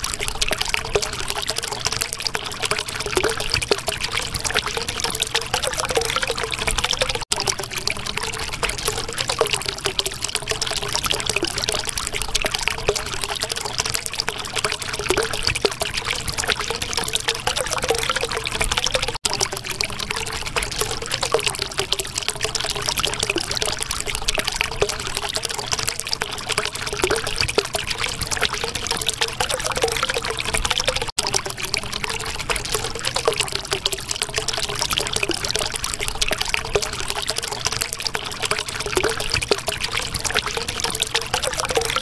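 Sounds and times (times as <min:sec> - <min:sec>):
water trickling: 0:00.0 - 0:42.0.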